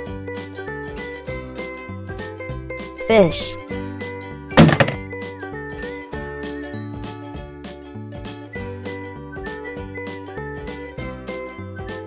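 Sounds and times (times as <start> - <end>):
loud thunk sound effect: 4.6 - 5.0.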